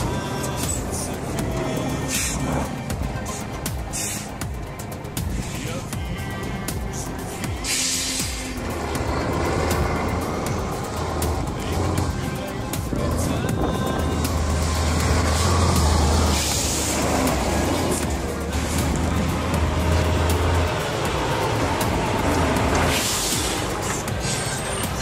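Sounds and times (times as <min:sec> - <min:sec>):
music playing: 0:00.0 - 0:25.0
truck diesel engine rumbling: 0:00.0 - 0:25.0.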